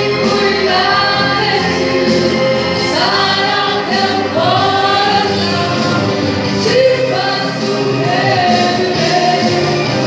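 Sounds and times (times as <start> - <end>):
musical accompaniment: 0.0 - 10.0.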